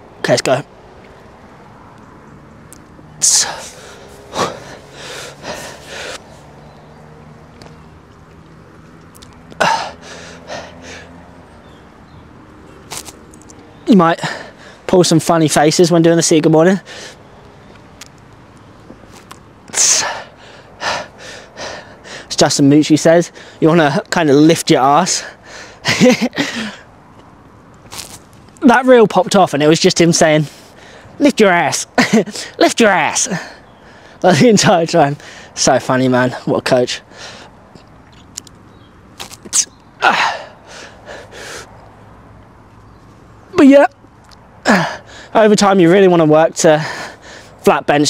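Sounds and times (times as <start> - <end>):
man breathing hard: 3.3 - 6.6, 9.6 - 11.2, 14.2 - 14.9, 16.8 - 17.3, 19.8 - 22.3, 23.3 - 23.6, 25.1 - 27.0, 30.4 - 31.2, 32.3 - 32.6, 33.3 - 34.2, 35.2 - 35.6, 37.0 - 37.7, 40.0 - 42.0, 44.6 - 45.4, 46.8 - 47.6.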